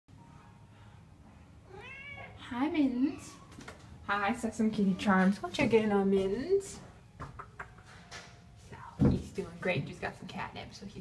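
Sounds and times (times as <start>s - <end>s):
cat meowing: 1.7s - 2.4s.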